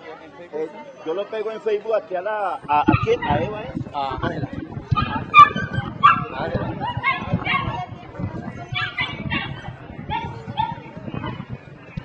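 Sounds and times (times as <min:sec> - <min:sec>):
people talking: 0:00.0 - 0:12.0
dog barking: 0:04.9 - 0:07.9, 0:08.7 - 0:11.5.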